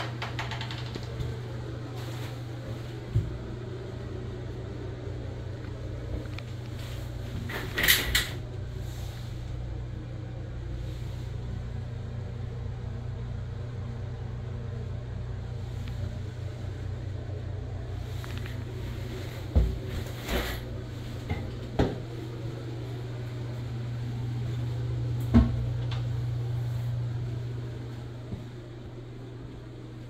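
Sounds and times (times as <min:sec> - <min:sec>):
ventilation fan humming: 0:00.0 - 0:30.0.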